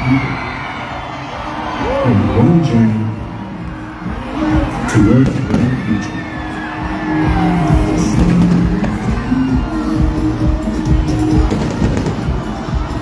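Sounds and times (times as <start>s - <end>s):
loud music: 0.0s - 13.0s
fireworks thudding: 11.4s - 12.5s.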